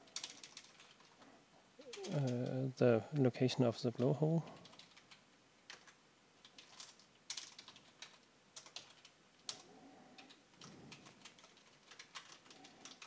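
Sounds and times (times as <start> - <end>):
faint keyboard typing: 0.0 - 13.0.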